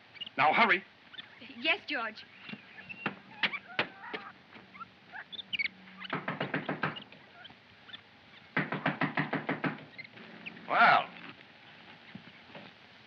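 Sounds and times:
faint high chirps: 0.0s - 8.5s
short animal calls: 0.1s - 8.6s.

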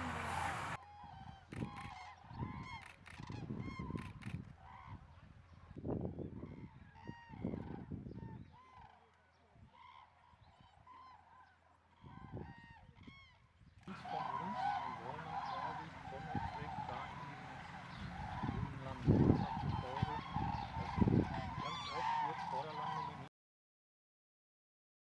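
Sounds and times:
cranes trumpeting calls: 0.0s - 5.0s, 9.8s - 23.3s.

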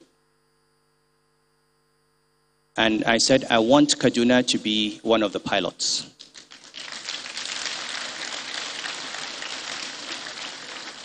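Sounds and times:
audience applauding: 6.2s - 11.0s.

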